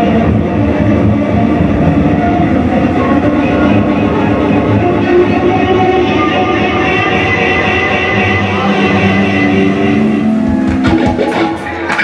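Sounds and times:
live punk band playing: 0.0s - 12.0s.

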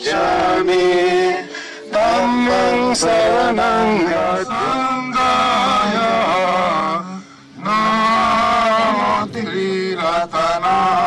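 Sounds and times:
man chanting into a microphone: 2.0s - 11.0s.

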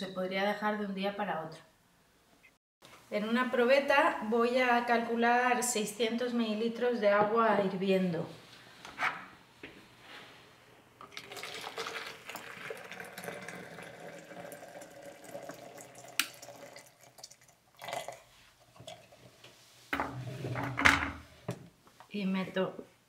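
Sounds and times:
water pouring into plastic jug: 11.0s - 19.2s.

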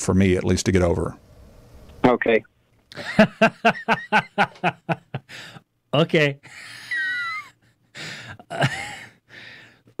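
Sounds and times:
man laughing under his breath: 2.9s - 5.6s, 6.4s - 9.5s.

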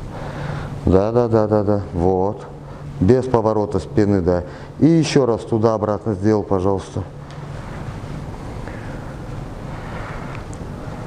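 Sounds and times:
low constant hum: 0.0s - 11.0s.

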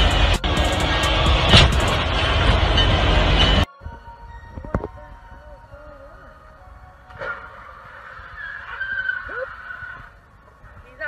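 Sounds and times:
car crash: 0.0s - 3.7s, 7.1s - 10.2s
wavering tyre squeal: 0.0s - 3.7s, 7.1s - 11.0s.

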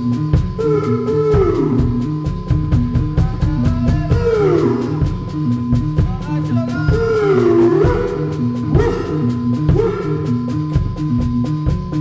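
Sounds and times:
drum kit beat on cymbals: 0.0s - 12.0s.

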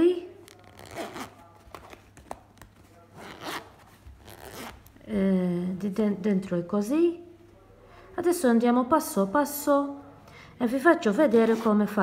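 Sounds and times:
zipper rasping open: 0.5s - 2.0s, 3.2s - 4.9s, 11.3s - 11.9s.

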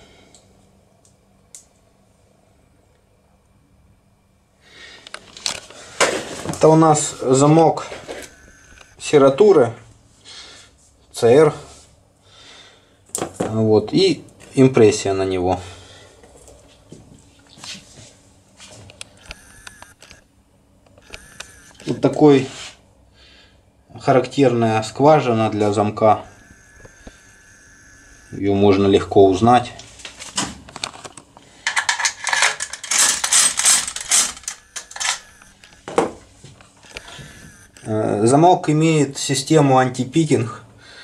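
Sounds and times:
metallic clinking and rattling: 31.6s - 35.2s.

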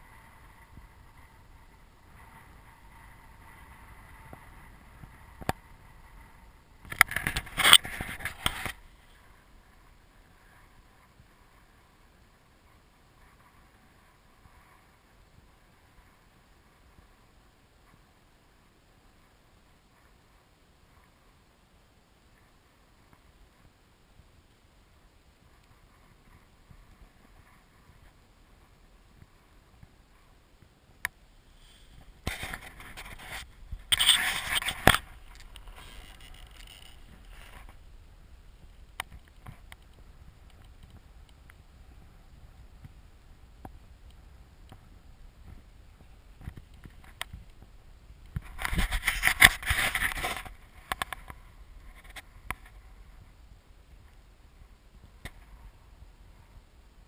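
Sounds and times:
faint low rumble: 0.0s - 57.0s
rushing scraping noise: 31.5s - 37.8s.

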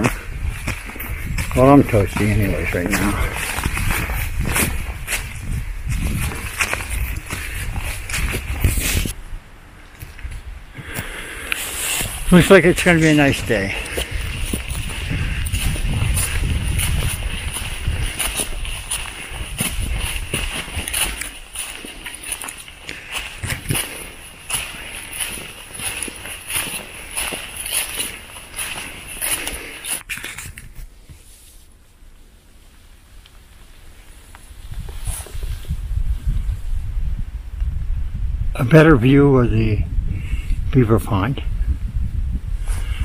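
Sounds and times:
footsteps on leafy trail: 0.0s - 9.2s, 9.9s - 31.6s, 33.8s - 36.1s
wind rumble on microphone: 0.0s - 29.4s, 33.6s - 43.0s
clothing and pack rustle: 11.6s - 31.8s.

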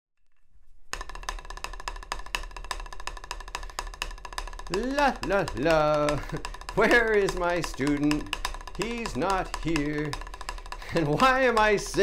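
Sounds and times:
drumsticks tapping on practice pad: 0.9s - 12.0s.

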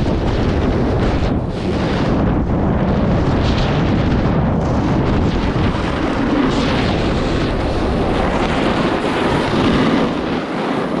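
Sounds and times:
wind rushing on microphone: 0.0s - 11.0s.

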